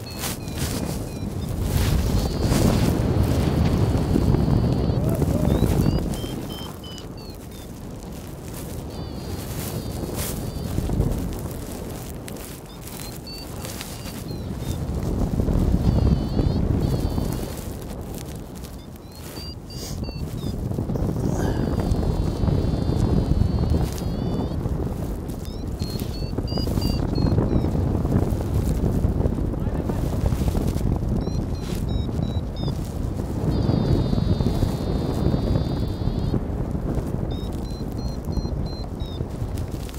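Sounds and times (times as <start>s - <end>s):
variometer beeps: 0.0s - 29.1s, 29.9s - 36.4s, 37.0s - 39.9s
wind buffeting microphone: 0.0s - 39.9s.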